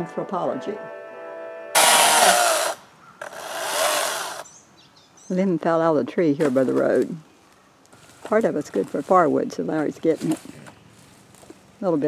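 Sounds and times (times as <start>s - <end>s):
chainsaw cutting wood: 1.8s - 4.5s.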